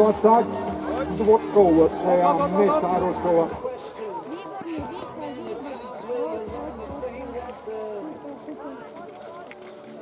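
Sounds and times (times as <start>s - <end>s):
murmur of chatter: 0.0s - 10.0s.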